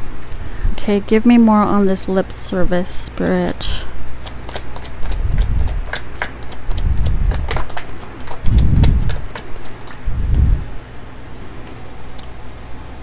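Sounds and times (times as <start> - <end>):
cards being shuffled: 4.2 - 10.0.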